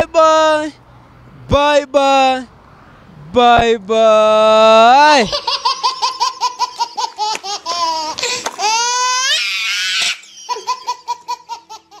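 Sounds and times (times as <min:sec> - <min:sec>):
high-pitched laughter: 0:05.2 - 0:12.0.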